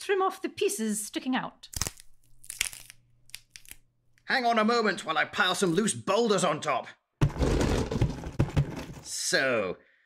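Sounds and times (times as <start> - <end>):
wet crackling bone crunches: 1.7 - 3.9.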